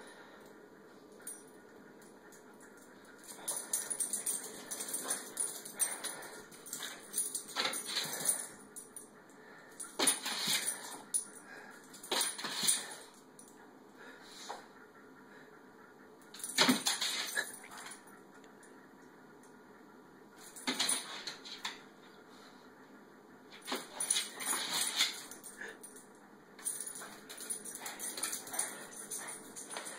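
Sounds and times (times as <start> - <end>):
dog claws clicking on tile floor: 2.6 - 8.5, 9.9 - 11.2, 12.0 - 13.0, 16.4 - 18.0, 23.6 - 26.0, 26.6 - 29.9.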